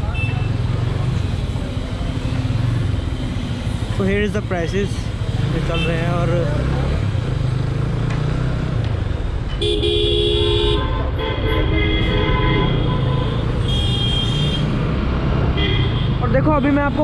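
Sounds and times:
vehicle horns honking: 0:09.6 - 0:14.8, 0:15.5 - 0:17.0.

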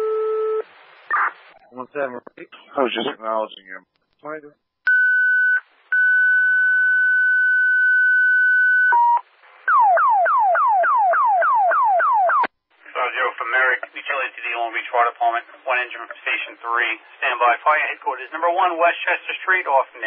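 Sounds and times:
person speaking over radio: 0:02.5 - 0:03.2, 0:12.9 - 0:20.0.

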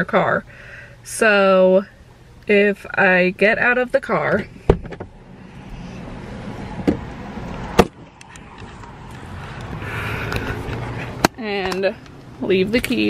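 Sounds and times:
outdoor traffic noise: 0:00.0 - 0:13.0
car door opening: 0:04.5 - 0:05.2, 0:06.7 - 0:08.8.

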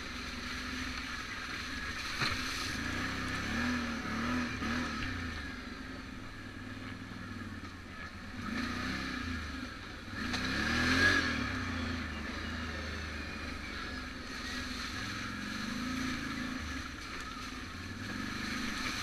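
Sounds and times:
quad bike engine revving: 0:00.0 - 0:19.0.

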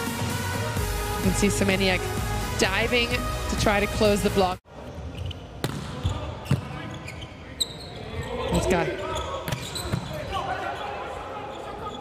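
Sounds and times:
arena crowd voices: 0:05.8 - 0:12.0.

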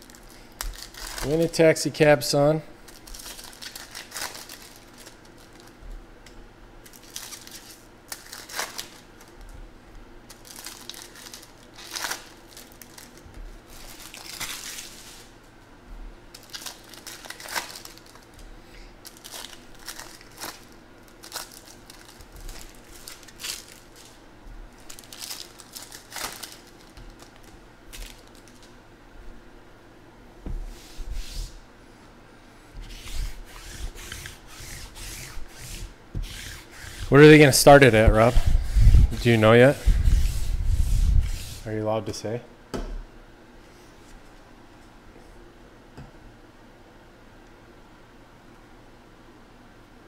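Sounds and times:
foil wrappers tearing and crinkling: 0:00.0 - 0:01.6, 0:02.9 - 0:05.8, 0:06.8 - 0:09.4, 0:10.3 - 0:15.3, 0:16.3 - 0:18.4, 0:19.0 - 0:28.7.

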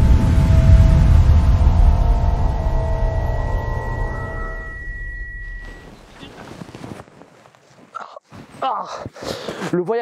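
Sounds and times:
rustling of dry pine needles: 0:05.5 - 0:08.5.

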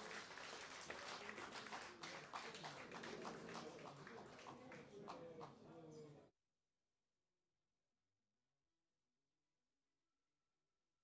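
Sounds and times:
audience applause: 0:00.0 - 0:05.2.

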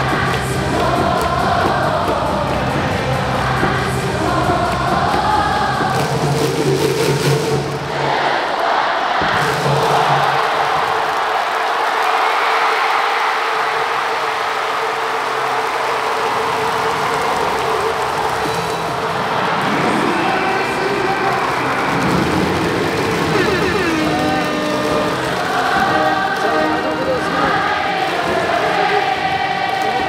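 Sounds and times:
crowd cheering and shouting: 0:00.0 - 0:06.5, 0:07.6 - 0:30.0
crowd singing in unison: 0:00.0 - 0:30.0
stadium music over loudspeakers: 0:00.0 - 0:30.0.

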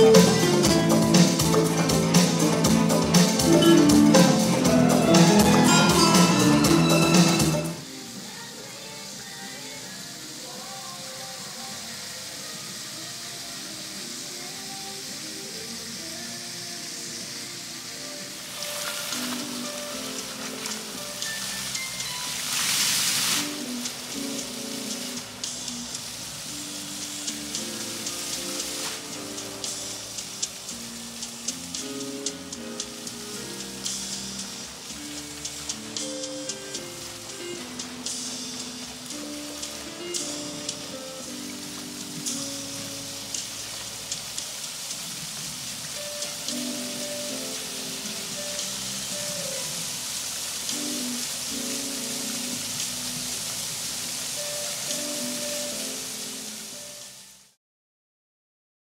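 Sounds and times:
slow melody of held notes: 0:00.0 - 0:08.0, 0:23.5 - 0:44.2, 0:45.8 - 0:57.4
music playing: 0:00.0 - 0:57.4
fountain jets splashing: 0:00.0 - 0:57.6.

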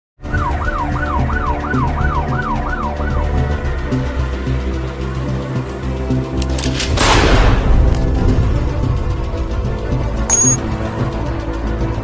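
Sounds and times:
emergency siren wailing: 0:00.2 - 0:04.5
music with deep low drone: 0:00.2 - 0:12.0.

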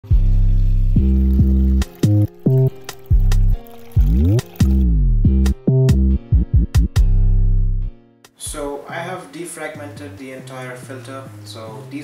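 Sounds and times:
synth bass intro music: 0:00.0 - 0:08.1
aquarium filter water splashing: 0:00.1 - 0:04.8.

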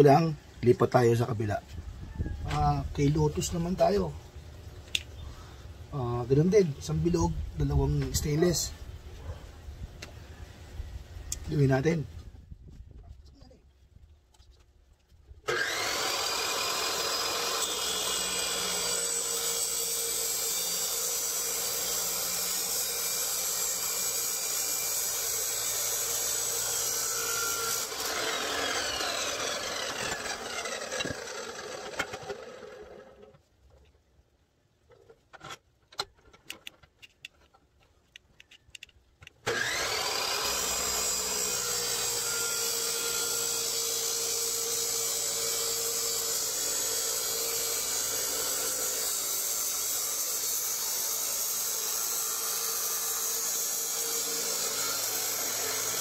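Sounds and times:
abrasive cut-off saw cutting metal: 0:15.5 - 0:33.3, 0:39.4 - 0:56.0
saw winding down whine: 0:15.5 - 0:33.3, 0:39.5 - 0:56.0.

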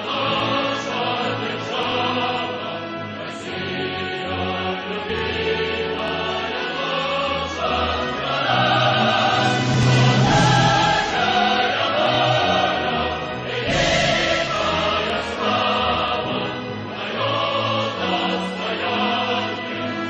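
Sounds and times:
choir singing sustained notes: 0:00.0 - 0:20.0
orchestra playing: 0:07.7 - 0:16.1.

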